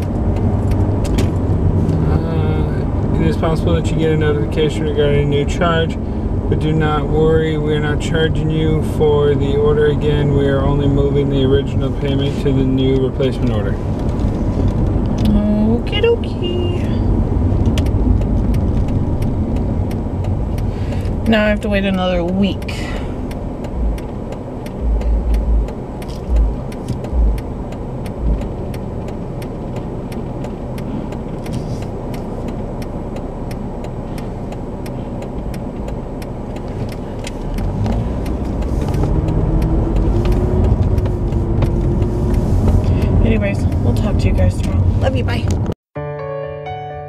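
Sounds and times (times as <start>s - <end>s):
car road and engine noise: 0.0s - 45.9s
low thuds: 16.9s - 29.0s.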